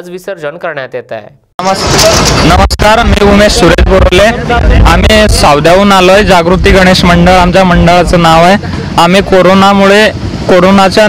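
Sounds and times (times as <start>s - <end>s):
man talking into a microphone: 0.0s - 11.0s.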